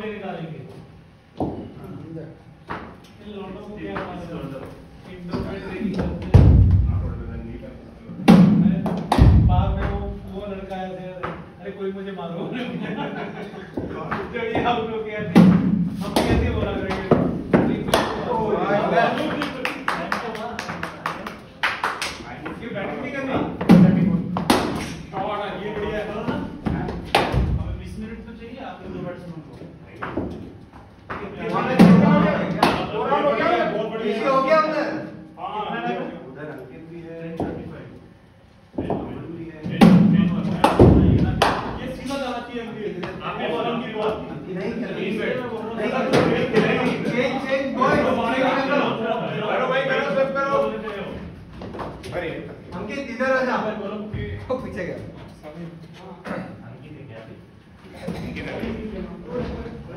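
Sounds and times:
voices: 0:00.0 - 0:59.9
heavy thuds: 0:06.0 - 0:07.6, 0:08.3 - 0:10.6.

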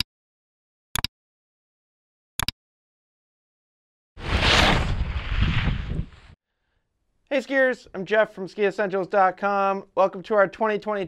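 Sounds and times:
loud deep whoosh: 0:04.2 - 0:06.4.

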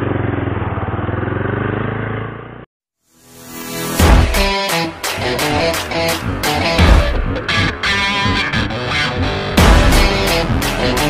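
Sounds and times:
motorcycle engine running: 0:00.0 - 0:02.7, 0:05.2 - 0:11.0.

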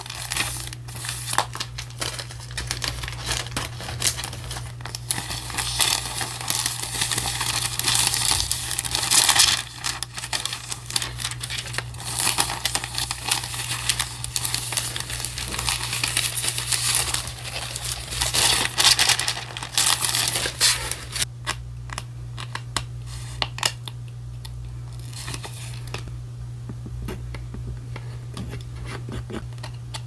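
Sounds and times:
paper crinkling and rustling: 0:00.0 - 0:21.3, 0:25.0 - 0:26.0
low steady hum: 0:00.0 - 0:30.0.

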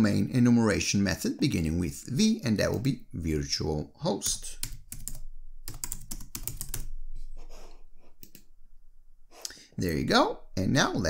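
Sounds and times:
typing on computer keyboard: 0:04.6 - 0:06.9.

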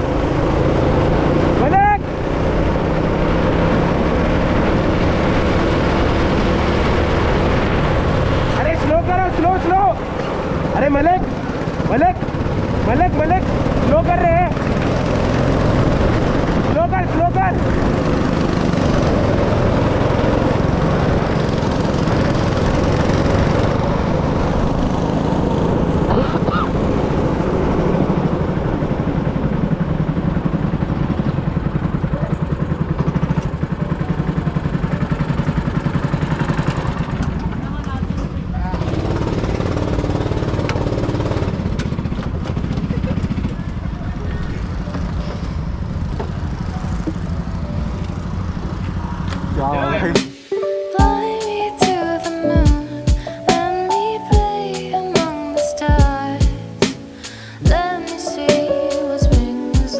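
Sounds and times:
go-kart engine running: 0:00.0 - 0:50.2.

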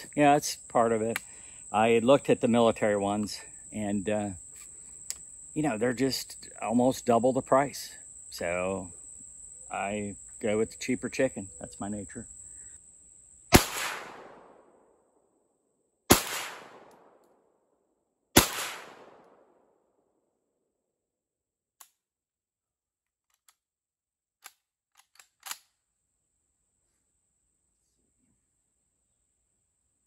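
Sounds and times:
rifle shots: 0:13.5 - 0:14.6, 0:16.1 - 0:17.2, 0:18.4 - 0:19.5.

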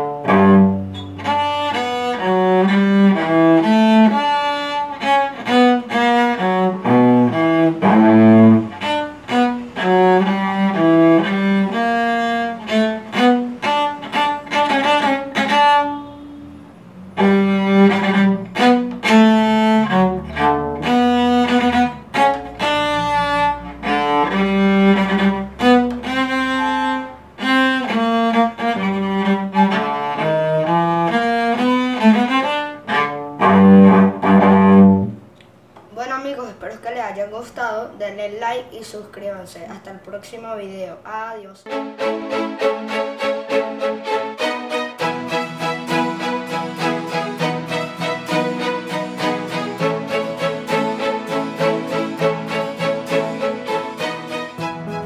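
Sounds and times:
bowed cello march tune: 0:00.0 - 0:35.3, 0:41.7 - 0:55.0.

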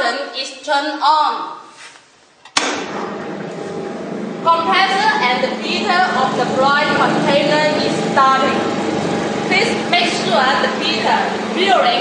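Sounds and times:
compressor and fan running: 0:02.3 - 0:12.0.

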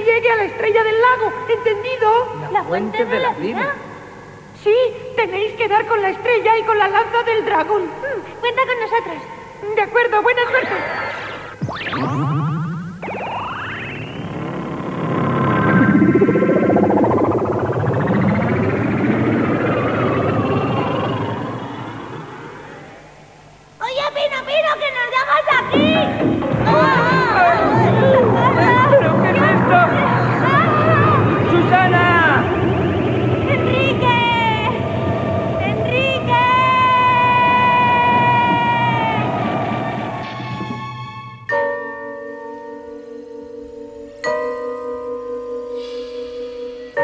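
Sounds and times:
low steady hum: 0:00.0 - 0:40.3
synthesizer sweeping tones: 0:10.2 - 0:23.8, 0:25.6 - 0:40.9, 0:45.7 - 0:47.0
warbling synthesizer tone: 0:10.2 - 0:23.8, 0:25.7 - 0:40.3
low rumbling rush: 0:13.0 - 0:23.7, 0:25.6 - 0:40.3
girl screaming: 0:35.6 - 0:39.5.

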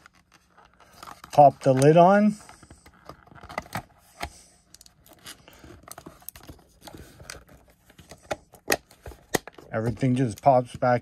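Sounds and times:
plastic scraping and handling: 0:00.0 - 0:11.0.

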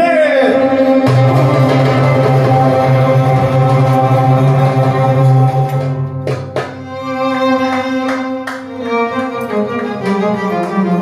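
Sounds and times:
violin: 0:00.0 - 0:11.0.

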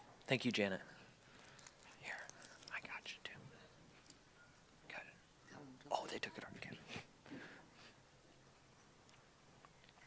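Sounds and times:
person whispering: 0:01.8 - 0:03.7, 0:04.9 - 0:05.2, 0:05.8 - 0:06.9.

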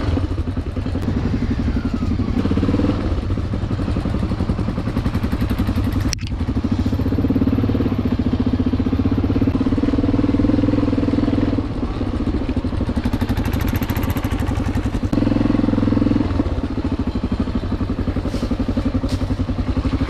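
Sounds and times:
motorcycle engine running: 0:00.0 - 0:20.0
sharp click: 0:06.0 - 0:06.4.

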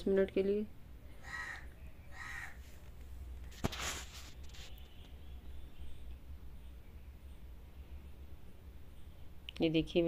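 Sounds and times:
harsh bird calls: 0:01.1 - 0:02.7.

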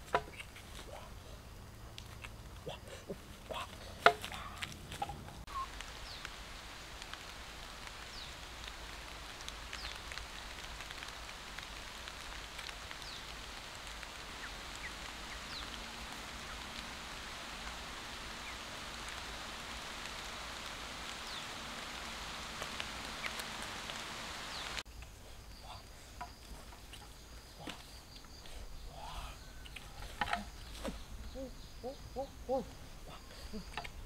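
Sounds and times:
forest ambience hiss: 0:00.0 - 0:34.0.

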